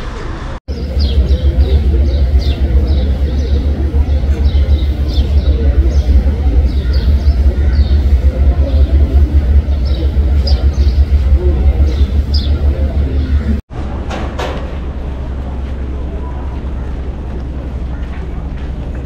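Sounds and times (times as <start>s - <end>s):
faint crowd voices: 0.0s - 19.0s
loud low rumble: 0.0s - 19.0s.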